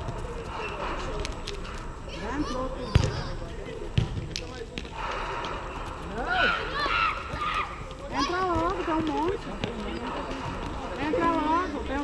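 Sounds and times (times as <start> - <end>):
players calling out: 4.9 - 9.0.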